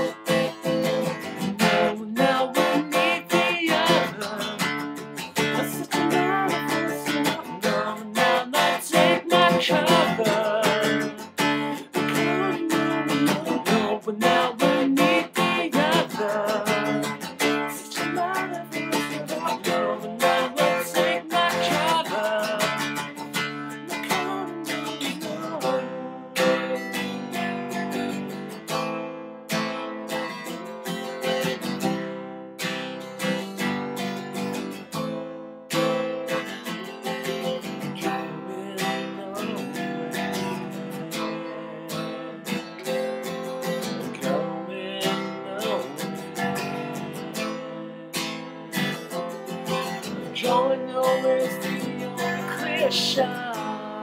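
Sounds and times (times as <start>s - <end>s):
man singing: 0.0s - 28.2s, 36.4s - 54.0s
acoustic guitar strumming: 0.0s - 54.0s.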